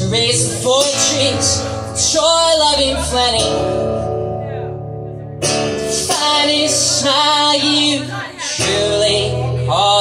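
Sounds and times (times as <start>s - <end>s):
acoustic guitar: 0.0s - 10.0s
man singing: 0.0s - 10.0s.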